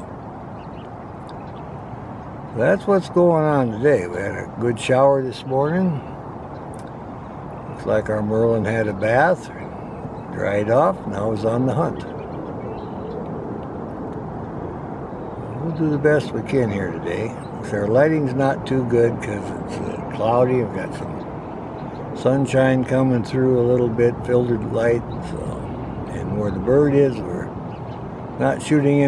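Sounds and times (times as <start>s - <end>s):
low outdoor rumble: 0.0s - 29.0s.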